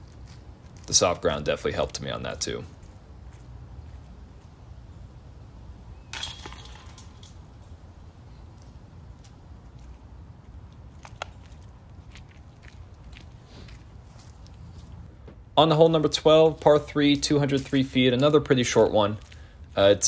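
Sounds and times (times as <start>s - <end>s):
low outdoor rumble: 0.0s - 20.0s
disc hitting metal chains: 6.2s - 7.8s.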